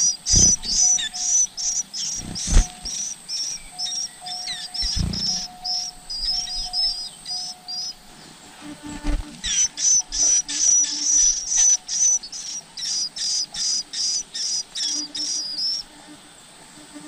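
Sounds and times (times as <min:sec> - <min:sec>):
small birds chirping: 0:00.0 - 0:17.0.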